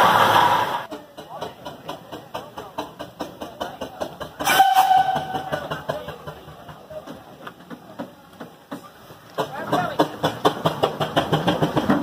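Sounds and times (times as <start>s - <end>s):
steam engine running: 0.0s - 12.0s
steam whistle: 4.4s - 5.7s.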